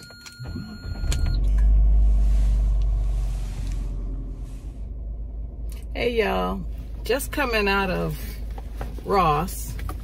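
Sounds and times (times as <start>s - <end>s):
car engine starting and running: 0.0s - 10.0s.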